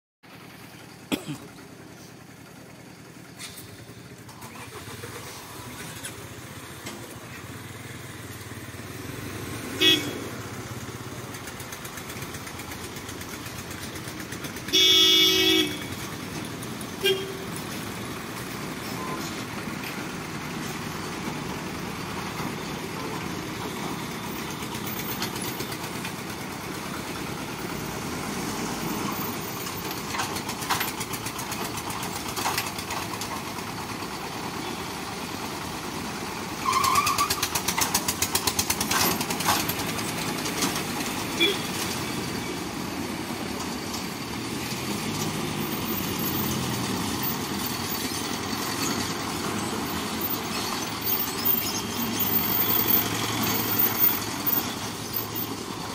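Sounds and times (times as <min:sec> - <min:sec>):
traffic engines running: 0:00.2 - 0:55.9
small engine running close: 0:00.3 - 0:55.9
vehicle horn honking: 0:09.8 - 0:10.4, 0:14.7 - 0:16.0, 0:17.0 - 0:17.6, 0:41.4 - 0:41.8.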